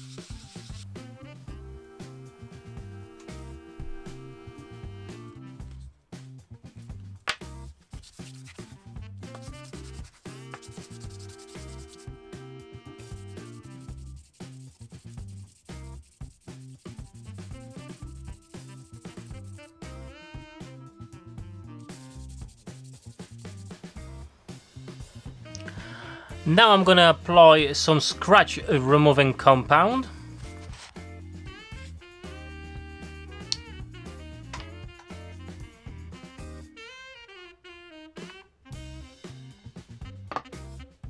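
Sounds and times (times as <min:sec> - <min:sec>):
hand sanding on wet abrasive: 0:00.0 - 0:01.1, 0:08.0 - 0:12.2, 0:12.9 - 0:19.7, 0:21.8 - 0:24.0
background music with beat: 0:00.0 - 0:28.9, 0:29.9 - 0:36.9, 0:38.2 - 0:41.0.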